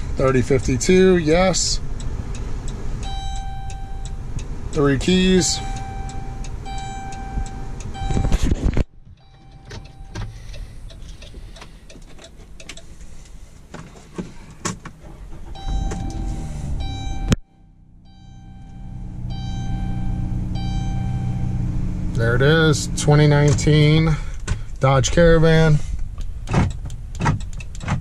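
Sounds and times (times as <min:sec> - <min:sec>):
car engine starting and idling: 0:00.0 - 0:28.0
electronic chime tones: 0:03.0 - 0:04.2, 0:05.4 - 0:08.4, 0:09.2 - 0:10.3, 0:15.6 - 0:21.7.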